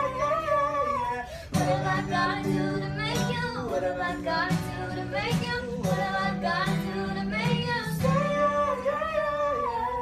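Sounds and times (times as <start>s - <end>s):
acoustic guitar: 0.0s - 10.0s
woman singing: 0.0s - 10.0s.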